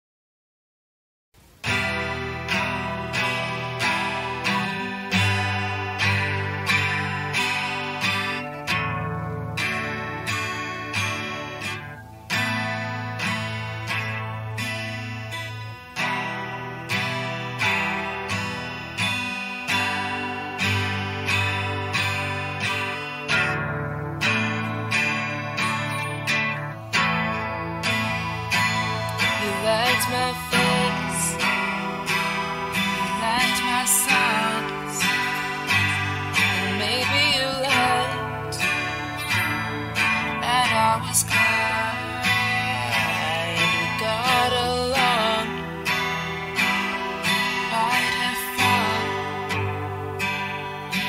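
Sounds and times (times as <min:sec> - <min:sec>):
acoustic guitar chords: 0:01.4 - 0:51.0.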